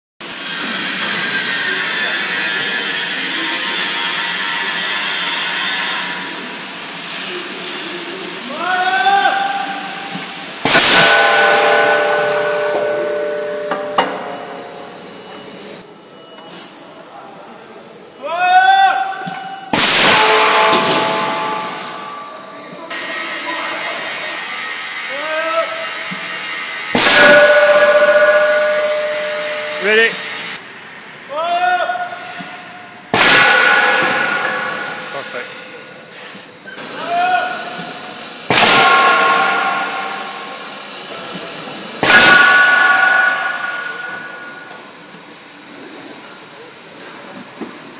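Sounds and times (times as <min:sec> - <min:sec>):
steel casting ringing: 0:00.2 - 0:08.2, 0:09.0 - 0:16.4, 0:19.0 - 0:30.6, 0:31.9 - 0:45.9
impact tool bangs on steel: 0:10.6 - 0:15.0, 0:19.7 - 0:22.4, 0:27.0 - 0:30.5, 0:33.1 - 0:35.6, 0:38.5 - 0:40.7, 0:42.0 - 0:44.9.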